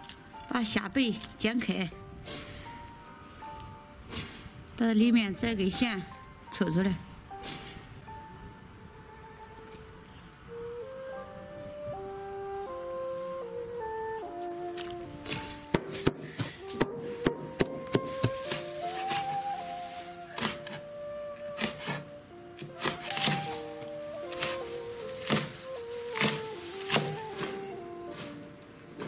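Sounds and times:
background music: 0:00.0 - 0:29.0
cleaver chopping on cutting board: 0:22.8 - 0:23.6, 0:25.2 - 0:25.6, 0:26.2 - 0:27.6.

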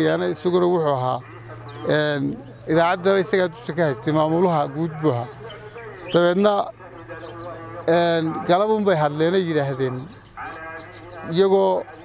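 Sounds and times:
people speaking: 0:00.0 - 0:12.0.

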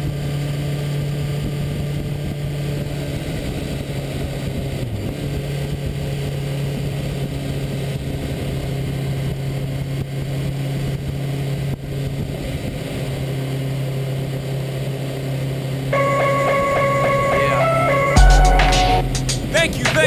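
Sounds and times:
music: 0:16.0 - 0:20.0.

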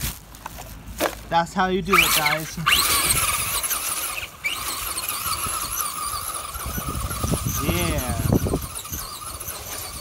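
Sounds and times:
rc truck motor whine: 0:01.8 - 0:10.0.

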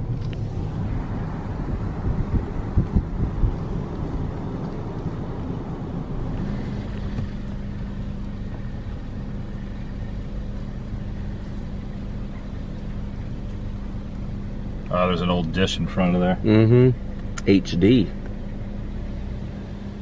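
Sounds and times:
car engine and tyre rumble: 0:00.0 - 0:20.0
steady low hum: 0:00.0 - 0:20.0
wind gusts on microphone: 0:00.1 - 0:07.4.

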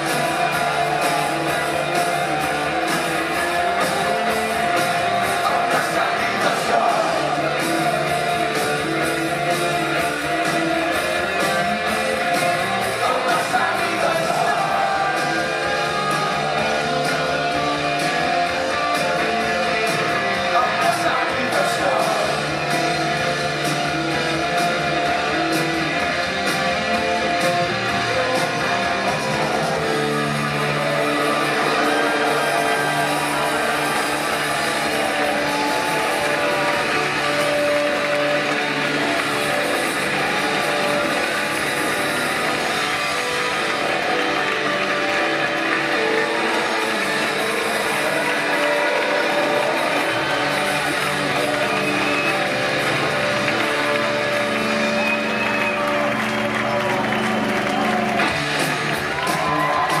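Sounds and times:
live rock band playing: 0:00.0 - 1:00.0.

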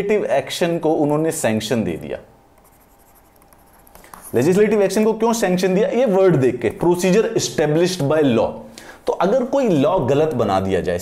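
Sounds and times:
person speaking: 0:00.0 - 0:11.0
stylus scratching on tablet: 0:02.6 - 0:05.0.

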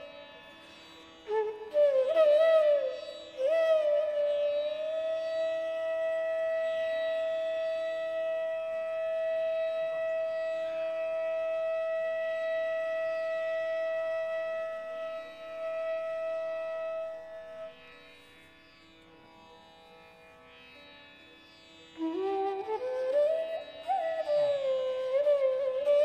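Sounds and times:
bamboo flute long note: 0:01.3 - 0:17.8, 0:22.0 - 0:26.0.

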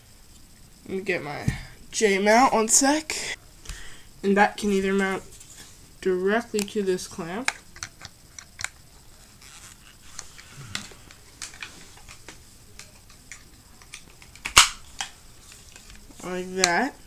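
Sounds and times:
plastic parts clicking: 0:07.5 - 0:08.8, 0:09.7 - 0:16.0.

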